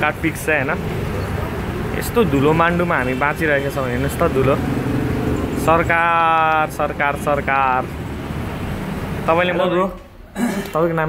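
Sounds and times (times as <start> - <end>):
vehicle engines running: 0.0 - 9.9
street traffic: 0.0 - 11.0.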